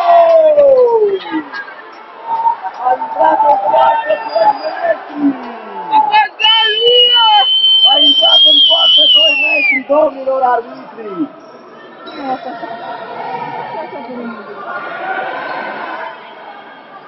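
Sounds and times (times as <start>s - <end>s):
crowd voices in a hall: 0.0s - 17.0s
referee's whistle long blast: 6.4s - 9.9s.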